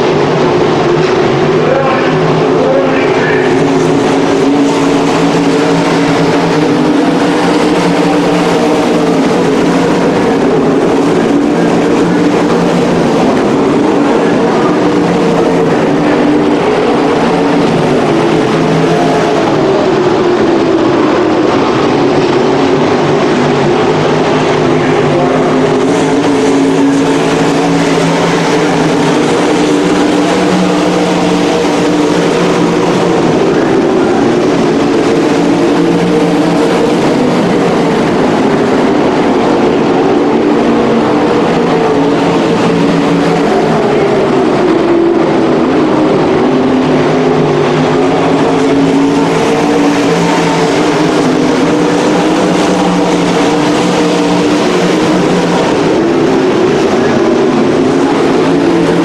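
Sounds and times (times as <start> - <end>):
racing car engines roaring: 0.0 - 59.0.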